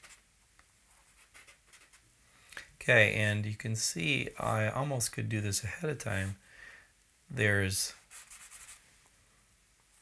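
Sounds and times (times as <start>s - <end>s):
charcoal scratching on paper: 0.0s - 0.2s, 1.0s - 2.0s, 8.0s - 8.8s.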